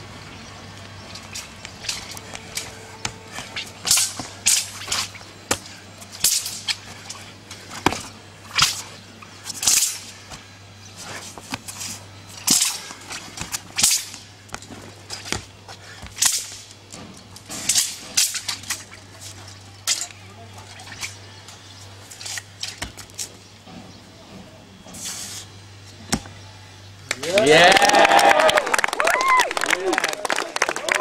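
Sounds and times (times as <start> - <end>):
low hum: 0.0 - 27.2.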